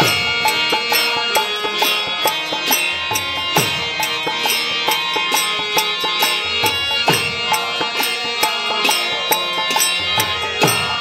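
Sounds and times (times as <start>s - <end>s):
harmonium chords: 0.0s - 11.0s.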